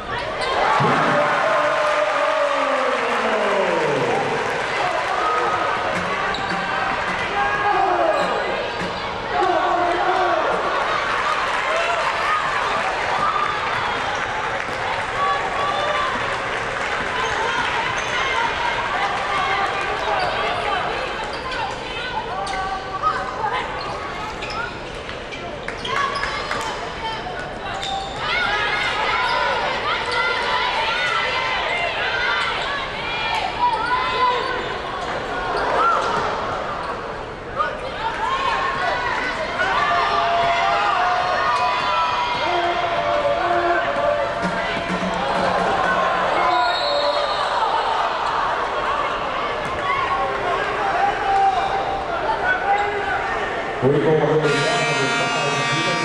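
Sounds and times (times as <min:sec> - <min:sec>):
voices of players and crowd: 0:00.0 - 0:56.0
sneakers squeaking on court: 0:23.8 - 0:26.7.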